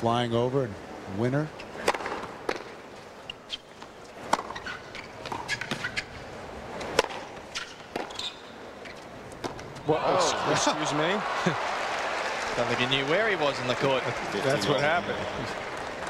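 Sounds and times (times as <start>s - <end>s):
tennis ball hits: 1.8s - 2.8s, 6.8s - 8.2s.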